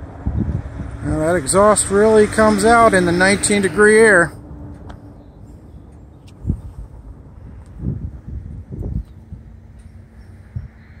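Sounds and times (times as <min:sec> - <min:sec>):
distant diesel locomotive rumble: 0:00.0 - 0:11.0.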